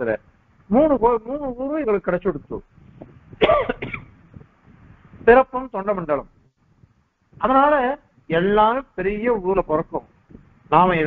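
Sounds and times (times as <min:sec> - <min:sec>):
man coughing: 0:03.4 - 0:04.2.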